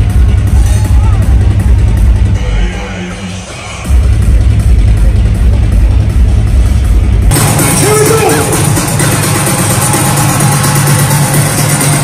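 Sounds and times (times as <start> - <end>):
electronic dance music: 0.0 - 12.0
heavy bass: 0.0 - 12.0.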